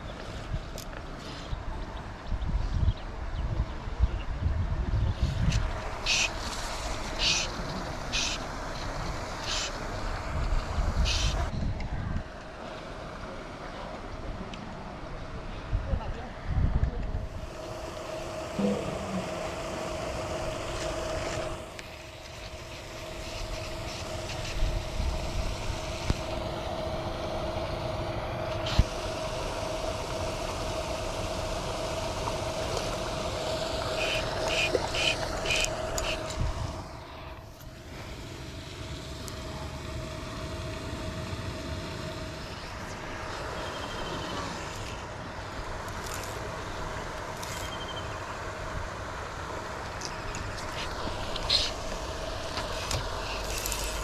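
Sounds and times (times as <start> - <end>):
aerator motor hum: 5.2 - 15.5, 17.1 - 54.0
churning water: 17.3 - 54.0
fly reel clicking: 34.0 - 36.4, 45.8 - 46.4, 47.2 - 48.0, 52.5 - 54.0.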